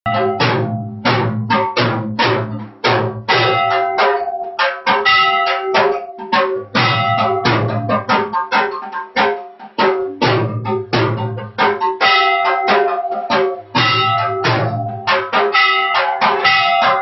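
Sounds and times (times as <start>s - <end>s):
drums struck in driving rhythm: 0.0s - 17.0s
ringing sustained tones: 3.3s - 17.0s.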